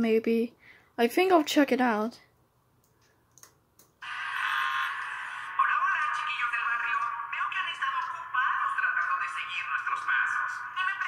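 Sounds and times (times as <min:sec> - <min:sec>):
video soundtrack from laptop speakers: 0:02.9 - 0:11.0
person speaking: 0:04.0 - 0:11.0.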